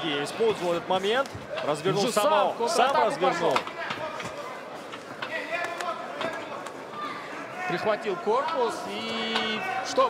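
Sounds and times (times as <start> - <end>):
arena crowd calling out: 5.4 - 10.0.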